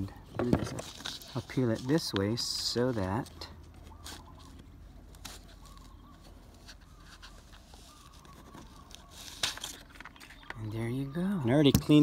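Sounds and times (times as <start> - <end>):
faint bird calls: 3.4 - 12.0.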